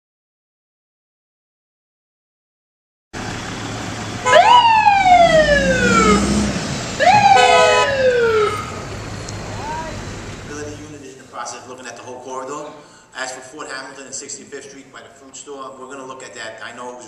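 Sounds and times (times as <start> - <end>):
fire truck siren: 3.2 - 10.3
street traffic noise: 3.2 - 13.2
steady horn tone: 4.2 - 4.6, 5.4 - 8.8.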